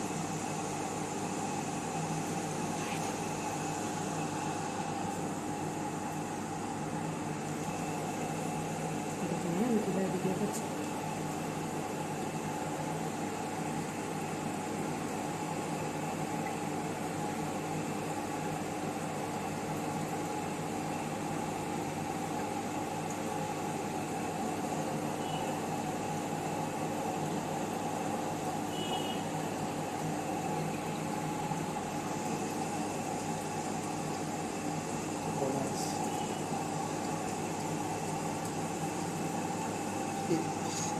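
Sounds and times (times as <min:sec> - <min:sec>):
mechanical hum: 0:00.0 - 0:40.9.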